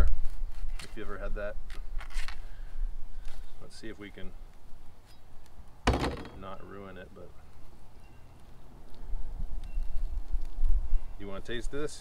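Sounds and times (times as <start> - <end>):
wind buffeting microphone: 9.0 - 11.2.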